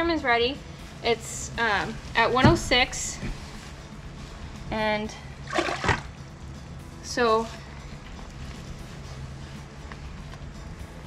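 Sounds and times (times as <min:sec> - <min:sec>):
liquid sloshing in plastic bottle: 0:05.5 - 0:06.1.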